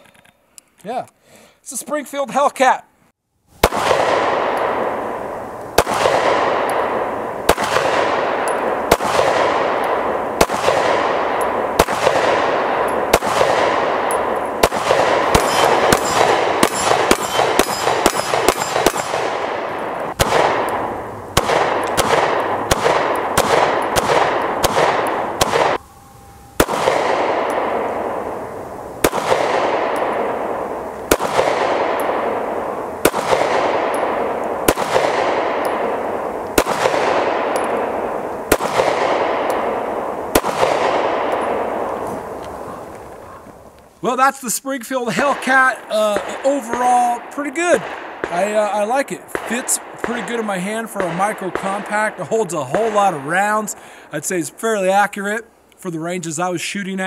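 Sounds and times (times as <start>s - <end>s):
pistol shots echoing: 3.6s - 25.9s, 26.6s - 43.5s, 45.1s - 55.0s.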